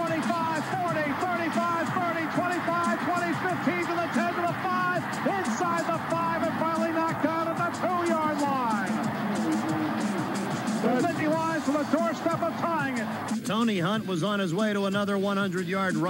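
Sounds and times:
background music with sliding pitches: 0:00.0 - 0:16.0
voices: 0:00.0 - 0:16.0.

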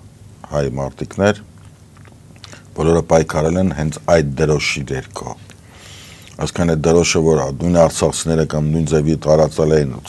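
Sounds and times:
man talking: 0:00.4 - 0:01.5, 0:02.5 - 0:05.6, 0:06.3 - 0:10.0
faint clicks: 0:01.6 - 0:02.6.

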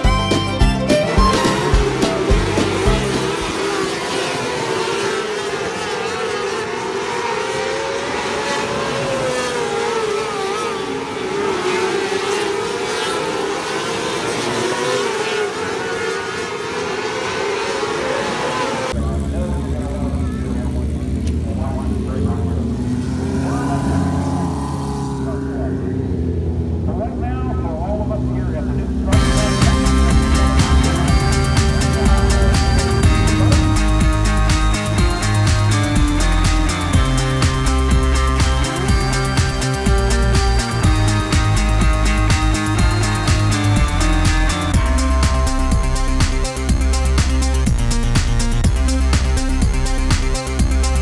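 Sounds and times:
racing car engines wavering: 0:00.0 - 0:51.0.

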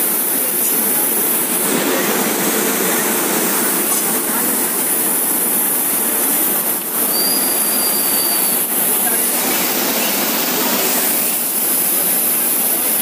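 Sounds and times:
train rolling over rails: 0:00.0 - 0:13.0
high wheel squeal: 0:07.0 - 0:09.0.

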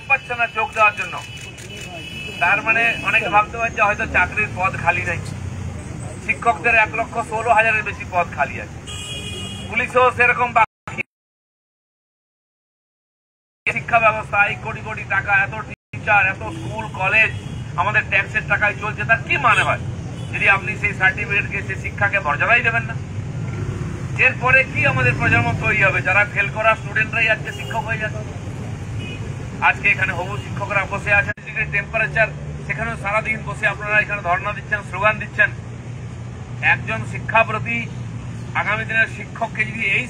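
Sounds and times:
man speaking into a microphone: 0:00.0 - 0:11.0, 0:13.7 - 0:23.1, 0:24.2 - 0:28.5, 0:29.5 - 0:35.7, 0:36.6 - 0:40.0.

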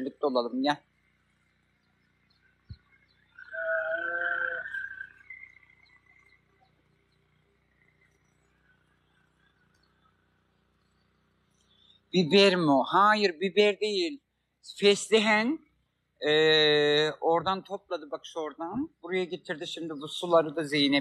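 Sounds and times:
drawn-out animal call: 0:03.2 - 0:06.6.

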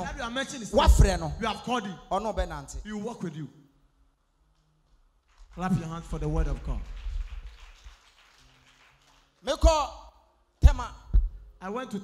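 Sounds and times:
congregation clapping: 0:04.6 - 0:10.0.

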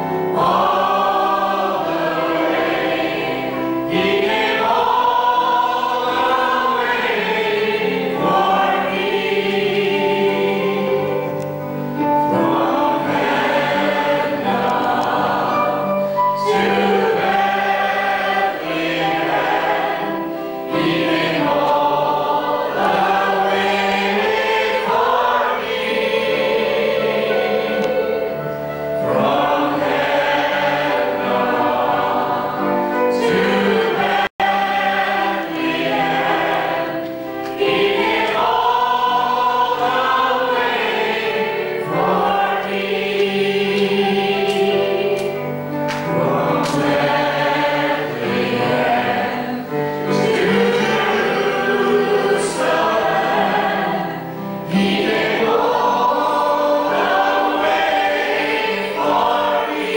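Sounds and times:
choir of women and girls singing: 0:00.0 - 0:59.9.

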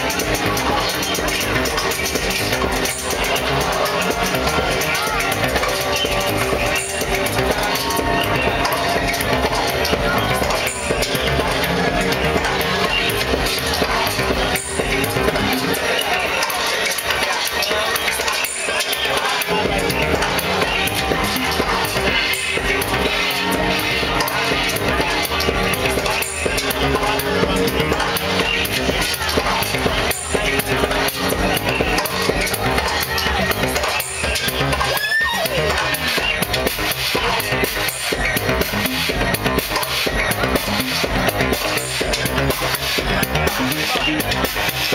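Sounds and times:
electronic dance music: 0:00.0 - 0:44.9.

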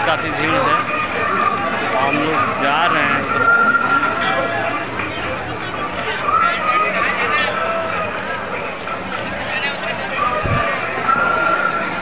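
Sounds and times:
crowd of people talking: 0:00.0 - 0:12.0.

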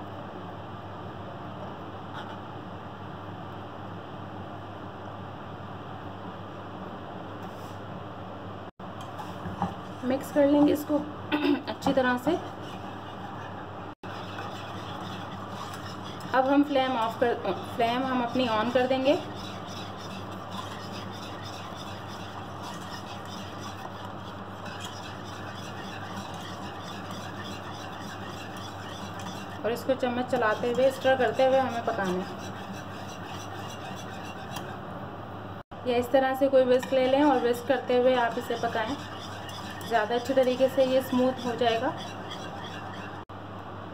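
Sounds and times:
low steady hum: 0:08.0 - 0:43.9
whisk stirring in saucepan: 0:09.2 - 0:11.0, 0:11.8 - 0:34.8, 0:36.5 - 0:43.3.

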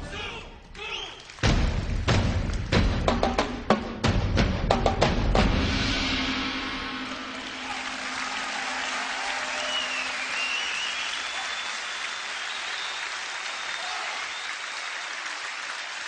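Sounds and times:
audience applauding: 0:00.8 - 0:03.0, 0:06.9 - 0:16.0.

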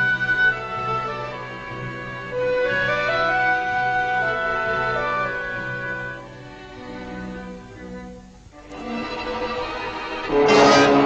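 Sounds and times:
low bowed strings: 0:00.0 - 0:11.0.

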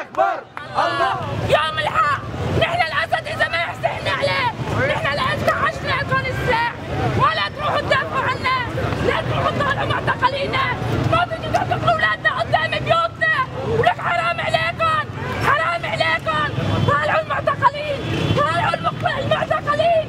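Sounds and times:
crowd babble: 0:00.0 - 0:20.0
crowd shouting and talking: 0:00.0 - 0:20.0.

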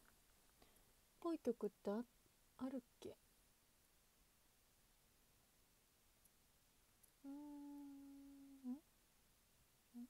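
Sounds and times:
woman humming: 0:07.2 - 0:08.9.

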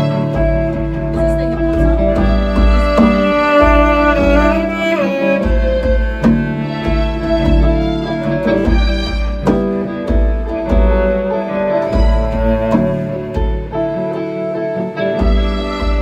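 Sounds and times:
held melody notes: 0:00.0 - 0:16.0
drum and cymbal hits: 0:00.1 - 0:14.0.

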